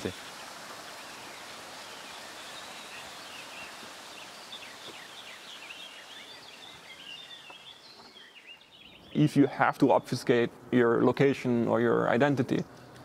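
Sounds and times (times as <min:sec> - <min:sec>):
steady hiss: 0:00.0 - 0:08.6
small birds chirping: 0:00.0 - 0:10.5.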